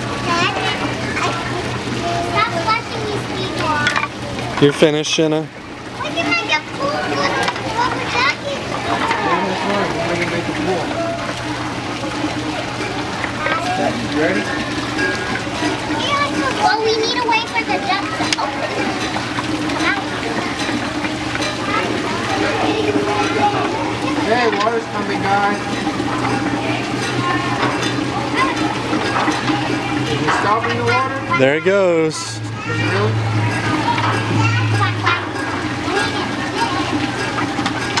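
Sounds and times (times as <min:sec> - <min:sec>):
children and adults chattering: 0:00.0 - 0:38.0
water splashing: 0:00.0 - 0:38.0.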